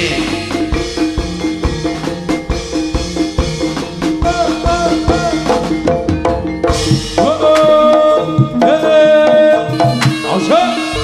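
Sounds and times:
hand drums beating: 0:00.0 - 0:11.0
high sliding melody: 0:00.0 - 0:11.0
ringing metallophones and gongs: 0:00.0 - 0:11.0.

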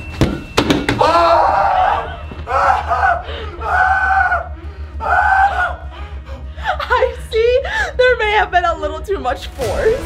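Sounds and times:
people shouting and screaming: 0:01.0 - 0:06.1.

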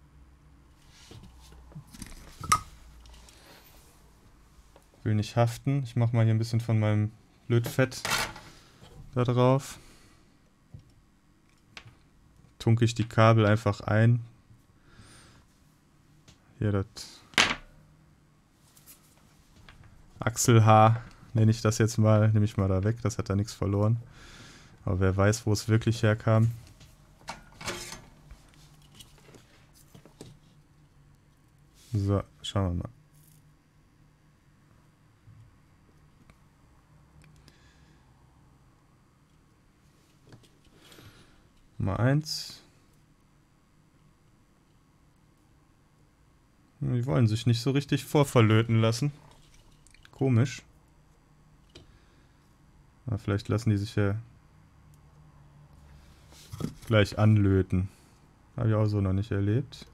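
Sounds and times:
tools and wires rustling: 0:26.4 - 0:30.6, 0:49.2 - 0:50.1.

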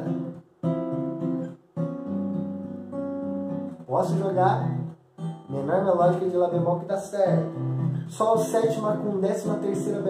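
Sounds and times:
acoustic guitar chords ringing: 0:00.0 - 0:10.0.

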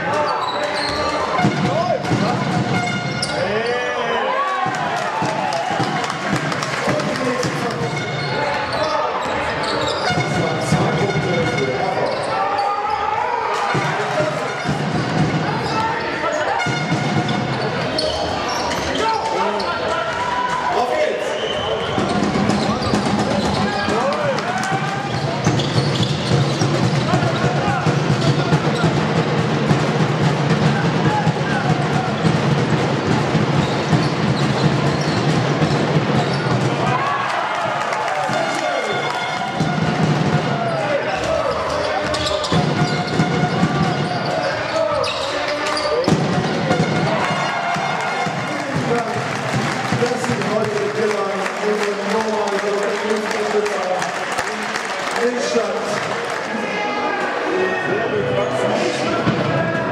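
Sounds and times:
voices in a hall: 0:00.0 - 0:59.9
shoes squeaking on court: 0:00.2 - 0:01.6, 0:07.8 - 0:10.5, 0:11.1 - 0:13.0, 0:14.4 - 0:19.7, 0:25.1 - 0:27.1, 0:33.6 - 0:36.6, 0:41.5 - 0:46.2.

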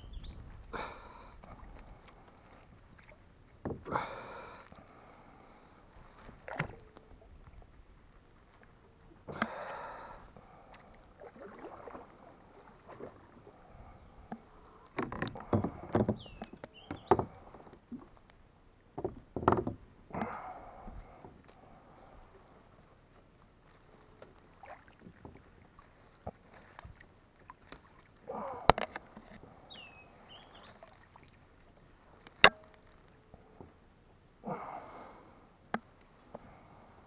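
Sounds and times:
water splashing: 0:00.8 - 0:03.3, 0:06.0 - 0:07.7, 0:10.5 - 0:14.0, 0:24.5 - 0:29.1, 0:30.2 - 0:32.8.

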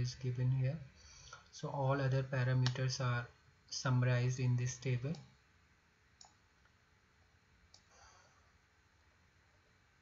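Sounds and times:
computer mouse clicks: 0:06.2 - 0:06.8, 0:07.7 - 0:08.0.

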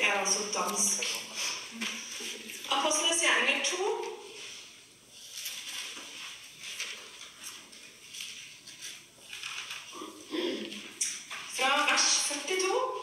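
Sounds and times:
paper pages turning: 0:04.4 - 0:10.0.

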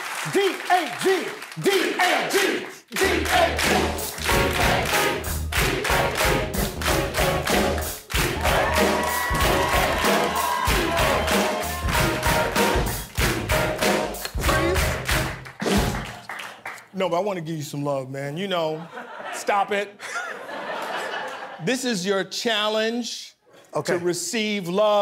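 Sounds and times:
live band playing upbeat music: 0:03.6 - 0:16.2.

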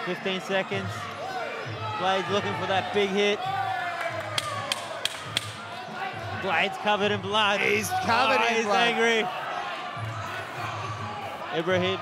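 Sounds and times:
sharp claps or knocks: 0:04.1 - 0:05.6.

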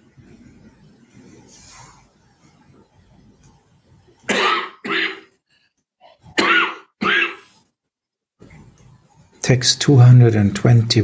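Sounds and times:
person coughing: 0:04.3 - 0:05.3, 0:06.4 - 0:07.5.

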